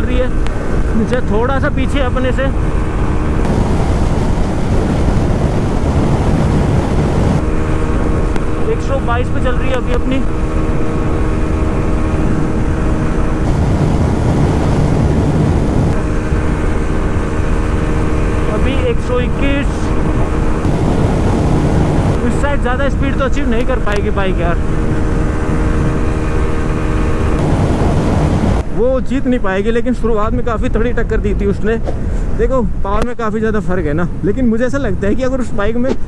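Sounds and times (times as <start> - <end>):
motorcycle engine at full throttle: 0.0 - 28.9
wind rush on microphone: 0.0 - 36.0.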